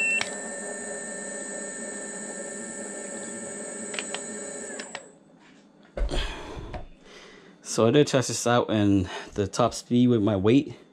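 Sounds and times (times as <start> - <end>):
electric scooter motor whine: 0.0 - 5.2.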